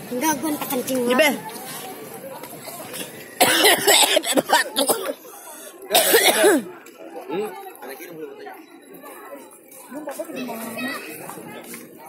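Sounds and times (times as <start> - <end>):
faint background chatter: 0.0 - 12.0.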